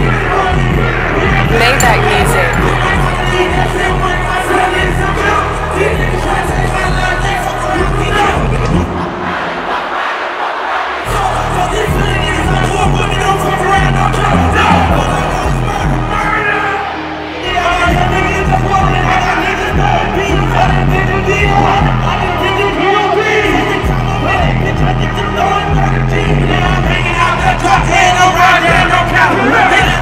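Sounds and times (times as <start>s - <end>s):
bass-heavy hip-hop beat: 0.0s - 9.9s, 11.0s - 30.0s
crowd shouting along: 0.0s - 30.0s.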